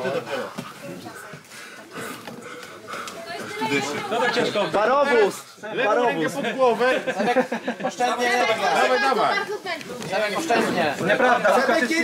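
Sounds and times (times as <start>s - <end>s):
low chatter of onlookers: 0.0s - 12.0s.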